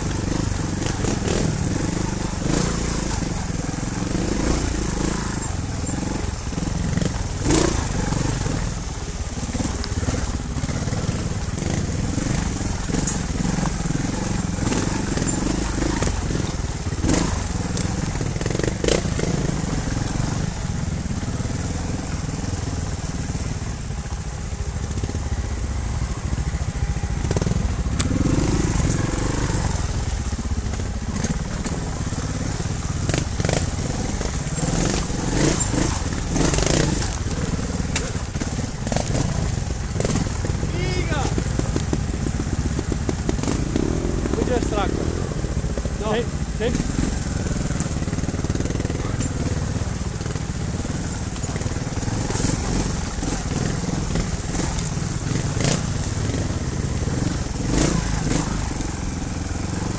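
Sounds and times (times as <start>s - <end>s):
motorcycle engine at low revs: 0.0s - 59.9s.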